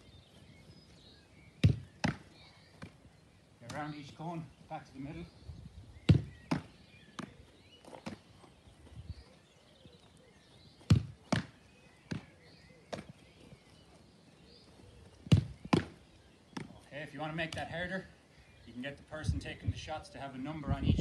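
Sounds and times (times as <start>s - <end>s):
football thudding: 1.6s - 3.0s, 6.0s - 7.3s, 10.8s - 12.3s, 15.3s - 16.0s.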